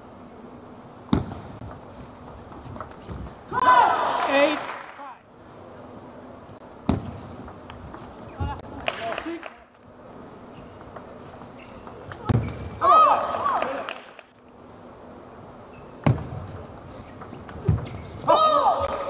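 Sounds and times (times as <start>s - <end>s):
players shouting: 3.5s - 4.8s.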